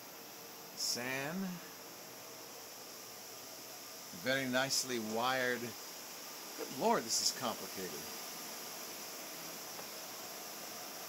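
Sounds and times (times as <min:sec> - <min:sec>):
cooling fans whirring: 0:00.0 - 0:11.0.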